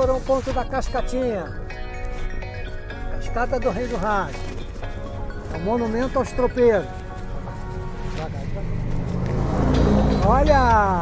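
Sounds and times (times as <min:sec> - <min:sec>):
car engine and road noise: 0:00.4 - 0:11.0
vehicle passing close: 0:07.0 - 0:11.0.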